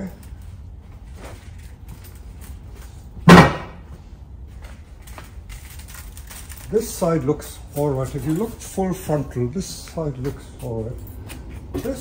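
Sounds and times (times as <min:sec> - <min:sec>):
loud thump: 0:03.2 - 0:03.8
faint handling noise: 0:03.8 - 0:12.0.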